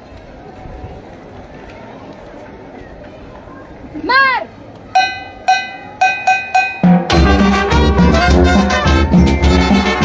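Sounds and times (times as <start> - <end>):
ringing metallic strikes: 5.0 - 7.5
marching band playing: 5.0 - 10.0.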